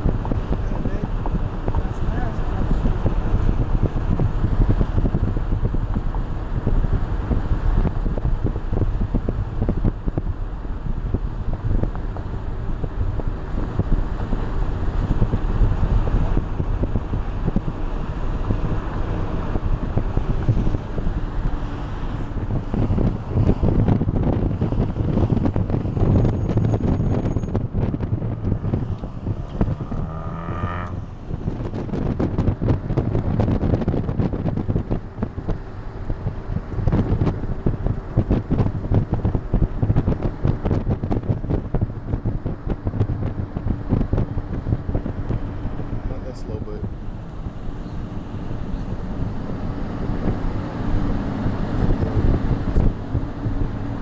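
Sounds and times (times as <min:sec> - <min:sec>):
vehicle road and engine rumble: 0:00.0 - 0:54.0
wind buffeting microphone: 0:00.0 - 0:54.0.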